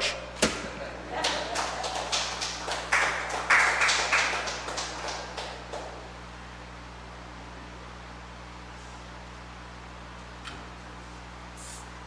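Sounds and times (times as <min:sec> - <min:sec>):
small group applauding: 0:01.1 - 0:06.2.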